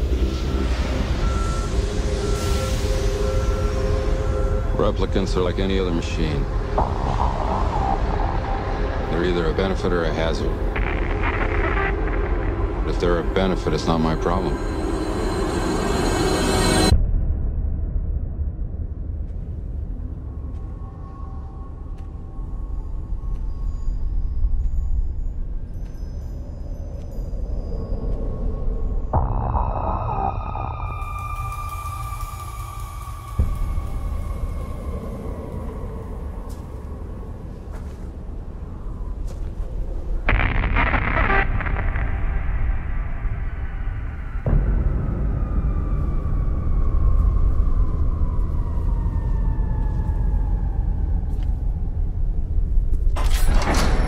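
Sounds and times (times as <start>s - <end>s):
deep steady rumble: 0.0s - 25.3s
deep rumbling drone: 0.0s - 54.0s
high tone sinking in pitch: 1.2s - 17.0s, 28.8s - 36.9s
deep boom: 6.4s - 15.2s
faint wavering tone: 12.9s - 17.0s.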